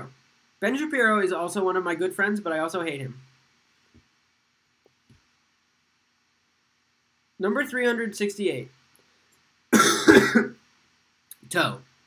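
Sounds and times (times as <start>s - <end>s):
man coughing: 9.8s - 10.6s.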